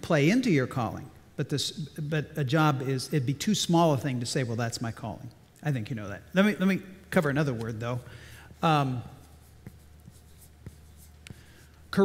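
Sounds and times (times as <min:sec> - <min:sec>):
marker scratching on blackboard: 0:08.5 - 0:12.0.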